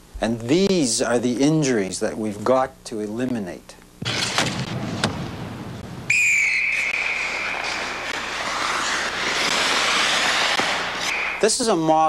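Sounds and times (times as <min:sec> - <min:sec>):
referee's whistle blast: 0:06.1 - 0:07.6.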